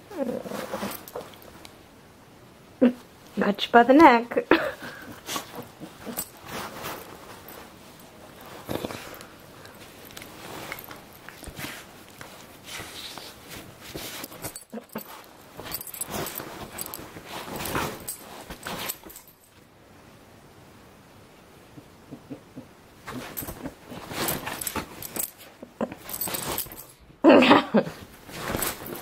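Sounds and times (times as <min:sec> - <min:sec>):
dogs play-wrestling: 0:00.1 - 0:01.7, 0:04.6 - 0:19.6, 0:21.8 - 0:27.0, 0:27.8 - 0:29.0
scuffling on bedding: 0:04.9 - 0:19.6, 0:23.0 - 0:26.9, 0:27.9 - 0:29.0.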